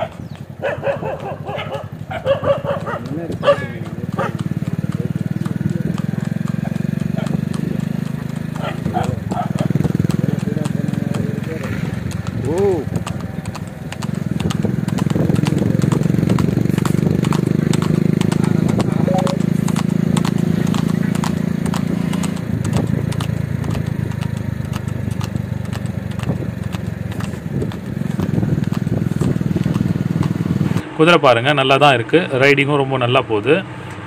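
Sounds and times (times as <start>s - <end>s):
hooves clip-clopping on tarmac: 0.0s - 30.8s
engine hum: 0.0s - 34.0s.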